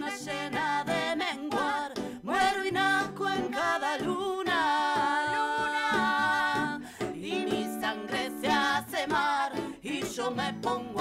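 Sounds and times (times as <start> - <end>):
acoustic guitar: 0.0 - 11.0
women singing a long note: 0.0 - 11.0.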